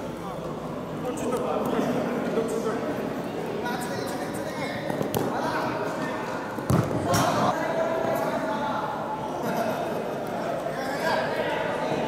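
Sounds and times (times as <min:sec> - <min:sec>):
football thuds on hard court: 0:06.7 - 0:07.4.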